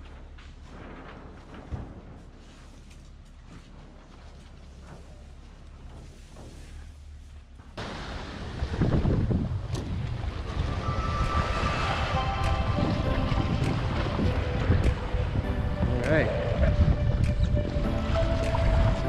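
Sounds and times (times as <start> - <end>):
water rushing past board: 7.8 - 19.0
wind buffeting microphone: 7.8 - 19.0
steady musical tones: 11.6 - 19.0.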